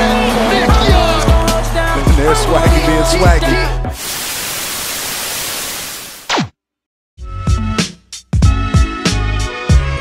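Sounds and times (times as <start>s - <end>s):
static hiss: 4.0s - 6.3s.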